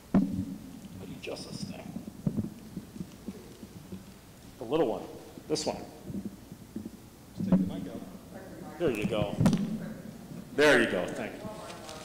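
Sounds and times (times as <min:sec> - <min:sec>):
microphone handling rumbles: 0:00.0 - 0:08.1.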